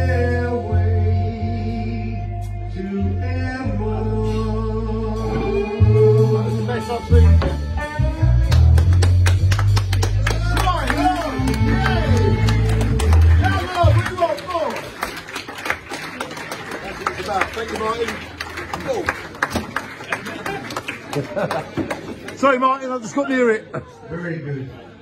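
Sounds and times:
live rock band playing: 3.7 - 14.1
audience clapping: 8.4 - 23.0.

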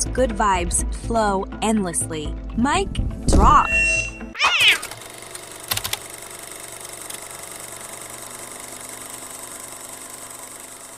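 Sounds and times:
cat meow: 4.4 - 4.9.

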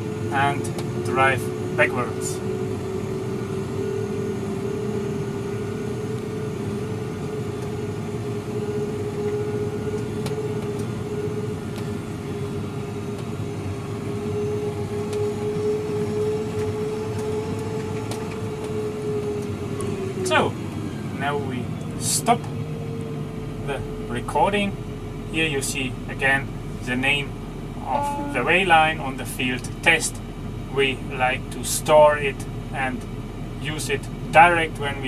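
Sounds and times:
steady mechanical whine: 0.0 - 35.0
tractor engine drone: 0.0 - 35.0.

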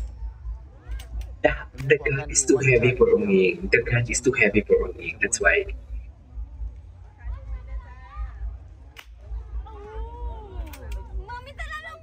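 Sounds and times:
low thumping beat: 1.3 - 6.8.

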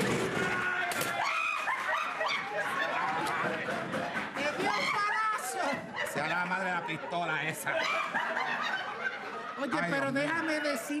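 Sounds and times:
people shrieking in panic: 0.1 - 3.5.

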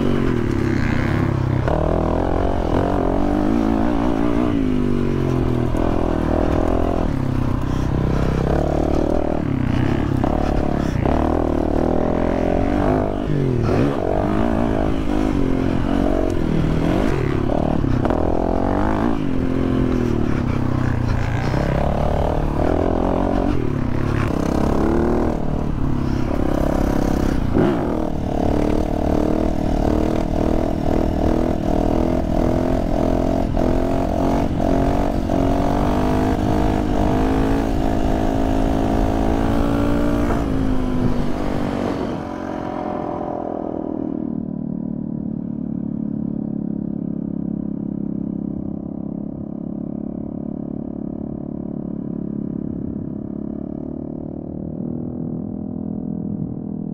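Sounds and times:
motorcycle engine revving: 0.0 - 56.9.

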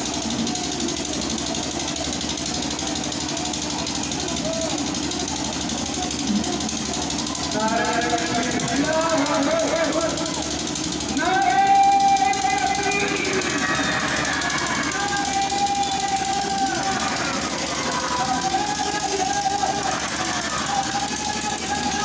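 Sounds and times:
street and crowd noise: 0.0 - 22.0.

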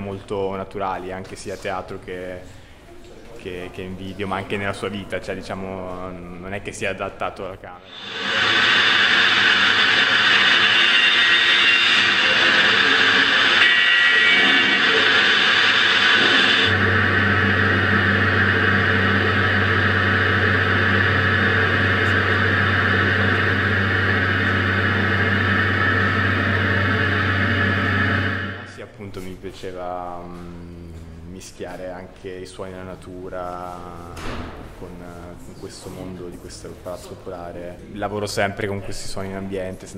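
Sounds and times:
steady wash of noise: 7.8 - 28.8
low steady hum: 7.9 - 29.0.

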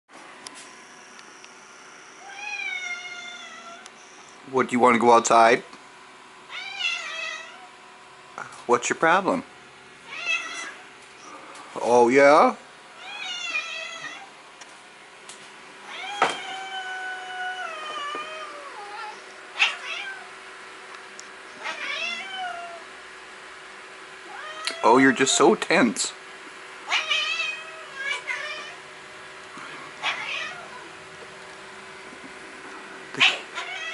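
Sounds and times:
cat meowing: 2.2 - 3.9, 6.5 - 7.7, 10.1 - 10.8, 13.0 - 14.3, 15.8 - 20.3, 21.6 - 22.8, 24.2 - 25.4, 26.9 - 28.8, 30.0 - 30.9, 33.2 - 33.9.

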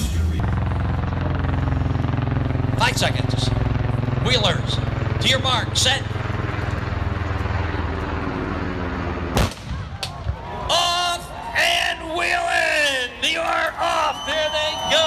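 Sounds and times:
steady low drone: 0.0 - 10.0
starting cannon shot: 9.3 - 10.3
spectators whooping and cheering: 9.7 - 15.0.

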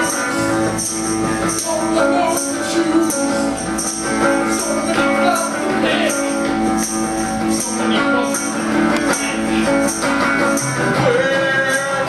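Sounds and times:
strummed guitar chords: 0.0 - 12.0.

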